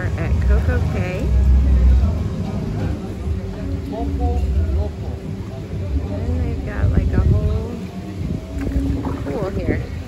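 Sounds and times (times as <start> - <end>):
wind buffeting microphone: 6.2 - 10.0.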